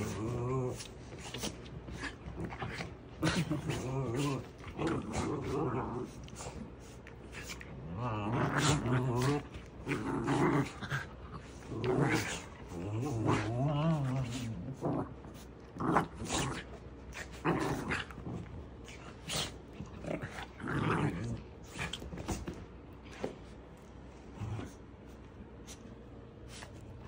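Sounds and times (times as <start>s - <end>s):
dogs growling: 0.0s - 23.3s, 24.2s - 25.2s.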